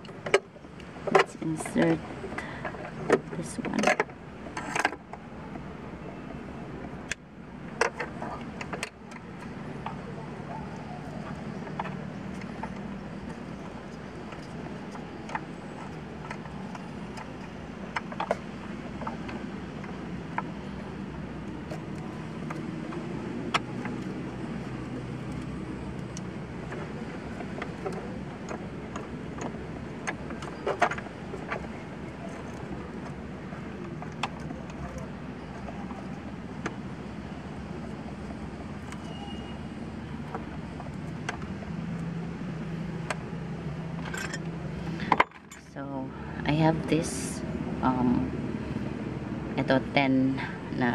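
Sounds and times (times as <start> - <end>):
low background hum: 0.0 - 50.9.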